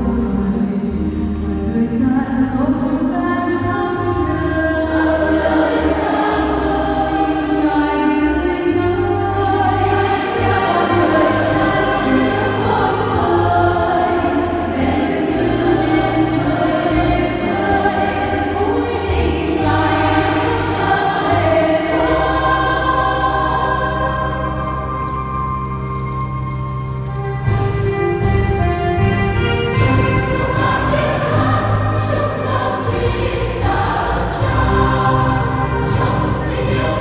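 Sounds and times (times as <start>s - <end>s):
church choir singing a hymn: 0.0s - 25.5s, 29.4s - 37.0s
steady low notes: 0.0s - 37.0s.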